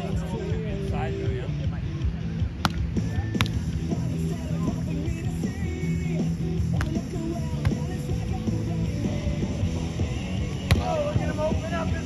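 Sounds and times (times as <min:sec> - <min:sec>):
background music low notes: 0:00.0 - 0:12.0
volleyball struck by hand: 0:02.6 - 0:03.6, 0:06.8 - 0:07.0, 0:07.6 - 0:07.9, 0:10.6 - 0:11.0.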